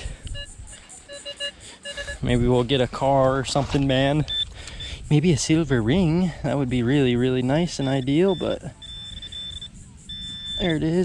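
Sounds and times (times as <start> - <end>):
metal detector beeps: 0.0 - 11.0.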